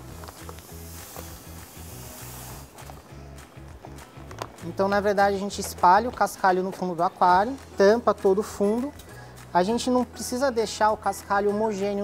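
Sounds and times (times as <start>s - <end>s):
background music with steady beat: 0.0s - 12.0s
sand pouring into glass tank: 0.4s - 2.8s.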